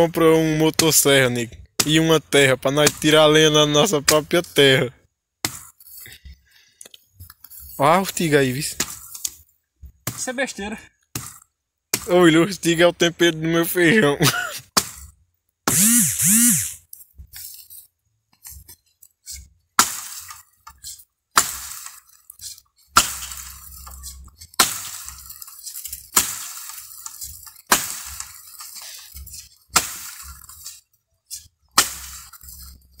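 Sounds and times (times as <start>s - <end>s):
axe chopping tree trunk: 1.8s - 2.0s, 2.8s - 3.2s, 5.4s - 5.8s, 8.8s - 10.5s, 11.1s - 12.1s, 14.8s - 16.0s, 19.8s - 30.7s, 31.6s - 32.7s.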